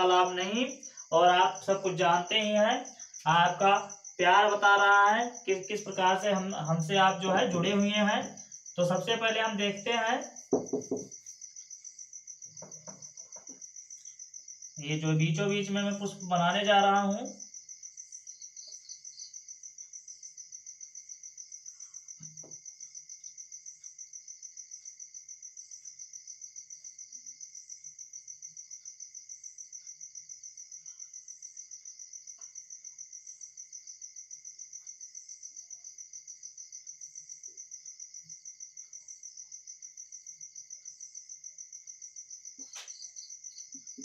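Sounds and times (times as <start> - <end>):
cricket chirping: 0.0 - 44.0.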